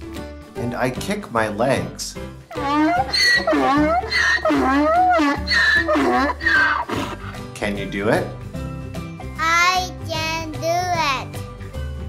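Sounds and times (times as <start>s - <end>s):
donkey braying: 2.5s - 7.5s.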